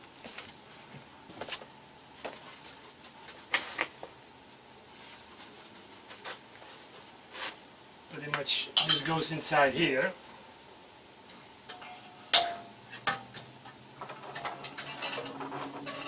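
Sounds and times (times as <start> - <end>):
man speaking: 8.1 - 10.2
metal pipe parts clinking: 8.8 - 9.1, 14.0 - 16.0.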